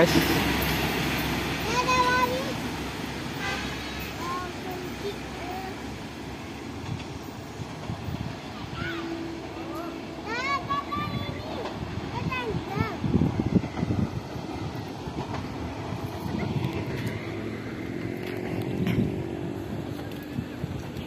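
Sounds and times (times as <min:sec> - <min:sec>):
train running along track: 0:00.0 - 0:21.0.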